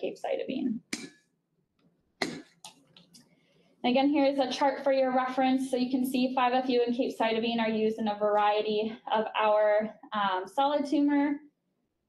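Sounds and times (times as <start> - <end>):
person coughing: 2.2 - 2.6
throat clearing: 2.2 - 2.6
person speaking: 2.2 - 3.2.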